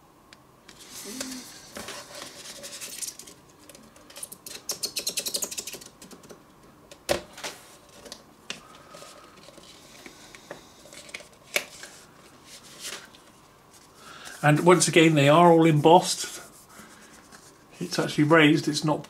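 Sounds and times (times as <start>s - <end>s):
card sliding and rustling: 0.7s - 3.3s.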